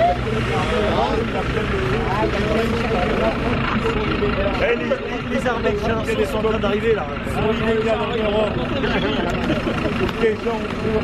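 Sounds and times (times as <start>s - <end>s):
crowd talking: 0.0s - 11.0s
low engine rumble: 0.0s - 11.0s.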